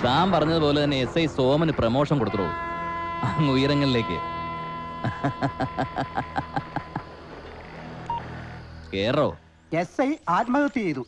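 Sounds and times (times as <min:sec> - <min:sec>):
voice: 0:00.0 - 0:02.6, 0:03.2 - 0:04.2, 0:08.9 - 0:11.0
loud gliding tone: 0:00.0 - 0:08.9
electronic telephone beeps: 0:08.0 - 0:08.5.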